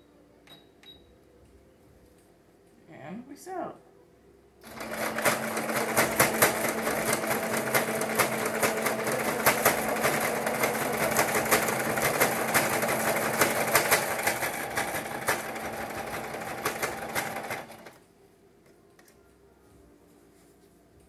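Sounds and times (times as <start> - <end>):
sewing machine stitching: 4.6 - 18.0.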